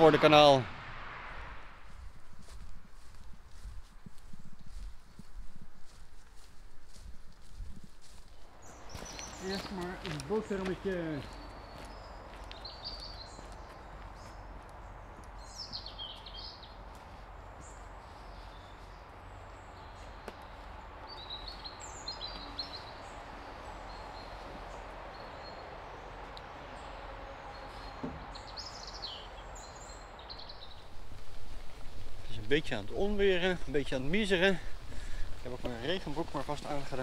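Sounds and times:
birds chirping and calling: 0:05.9 - 0:19.0, 0:19.7 - 0:37.0.

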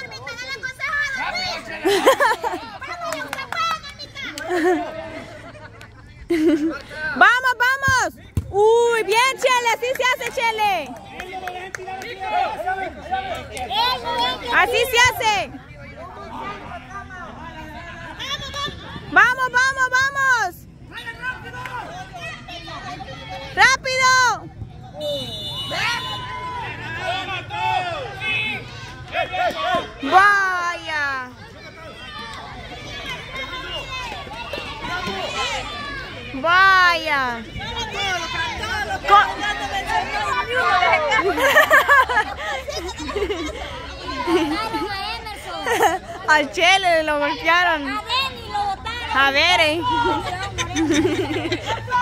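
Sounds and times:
men calling and shouting: 0:00.0 - 0:52.0.

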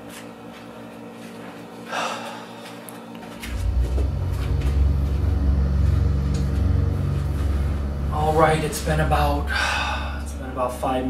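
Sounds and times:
steady low hum: 0:01.2 - 0:11.0.

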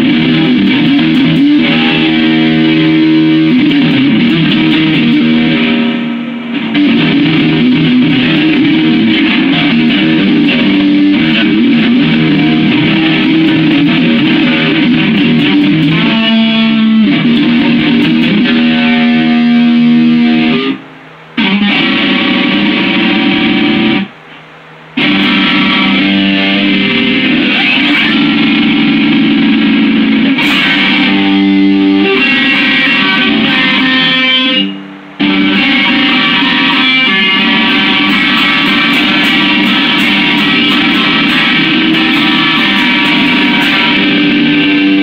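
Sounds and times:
loud electric guitar chords: 0:00.0 - 0:45.0.

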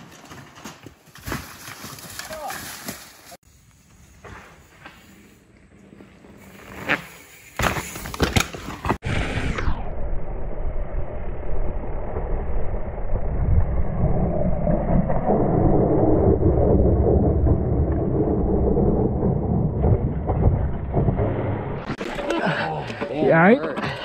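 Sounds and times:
bike tyres on dirt: 0:00.0 - 0:09.5.

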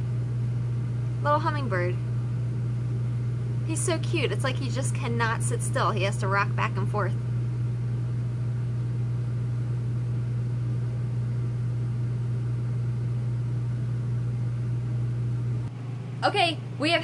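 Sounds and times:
low mechanical hum: 0:00.0 - 0:17.0.

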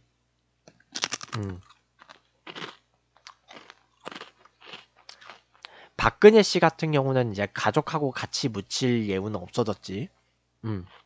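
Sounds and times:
person chewing crunchy food: 0:00.7 - 0:05.8.

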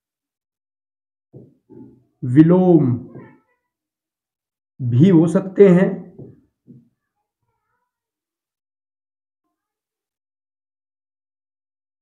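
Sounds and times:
man talking: 0:02.2 - 0:03.2, 0:04.8 - 0:06.2.

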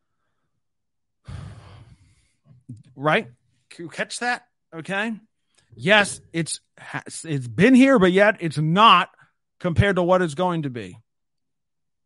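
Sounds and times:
man sighing: 0:01.2 - 0:02.3
man speaking: 0:02.7 - 0:11.0.

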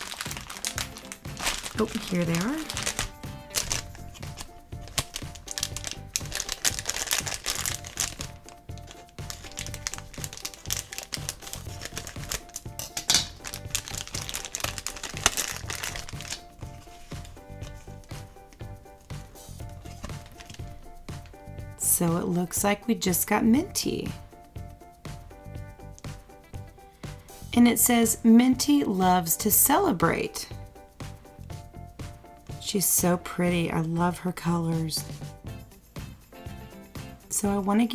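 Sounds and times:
plastic packet crinkling: 0:00.0 - 0:18.1, 0:19.8 - 0:20.8
background music: 0:00.0 - 0:37.9.

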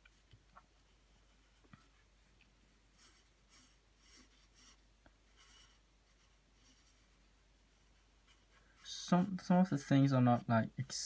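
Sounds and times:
pencil scratching on paper: 0:02.9 - 0:11.0.

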